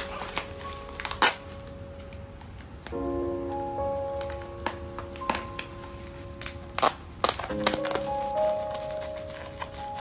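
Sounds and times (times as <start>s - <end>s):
background music: 0.0s - 10.0s
bubble wrap crackling: 0.0s - 10.0s.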